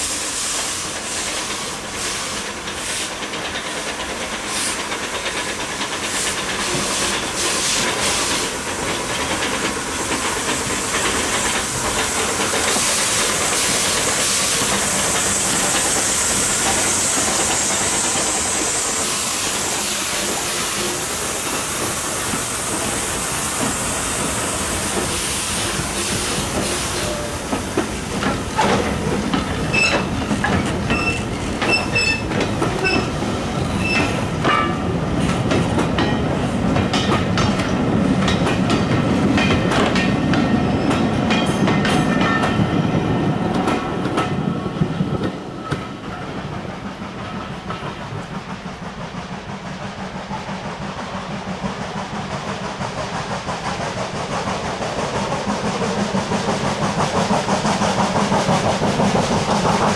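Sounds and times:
railway coaches rumbling: 0.0s - 59.9s
train wheels clicking over rail joints: 0.0s - 59.9s.

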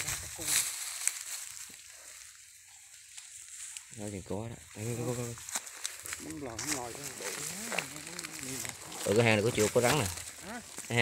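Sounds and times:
dry grass rustling and crackling: 0.0s - 11.0s.

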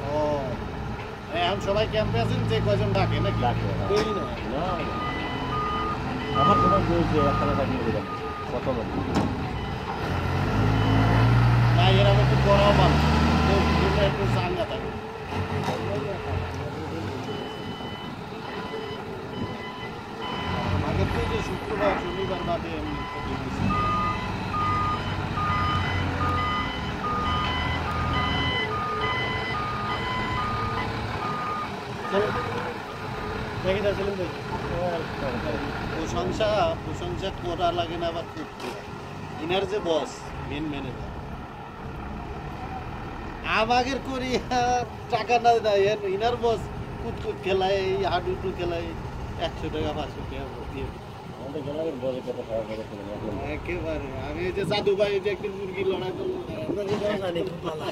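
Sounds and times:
forklift engine rumbling: 0.0s - 57.9s
forklift reversing alarm beeping: 3.0s - 11.9s, 17.2s - 33.5s.

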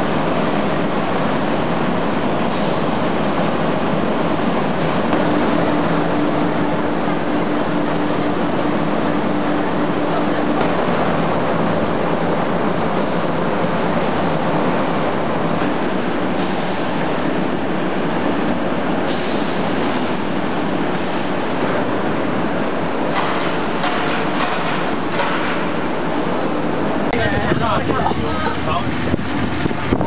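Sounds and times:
factory machinery running: 0.0s - 30.0s.

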